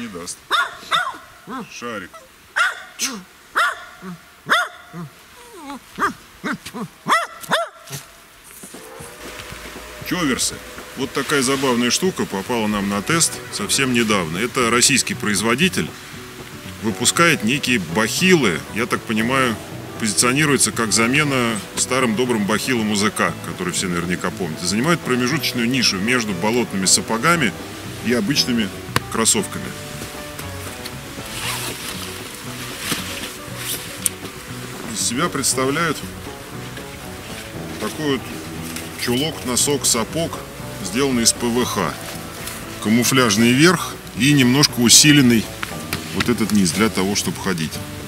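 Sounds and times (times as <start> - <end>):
small dog barking: 0.5 - 1.7, 2.6 - 5.1, 6.0 - 8.1
background music: 8.3 - 48.0
zipper pulled open: 31.2 - 32.2.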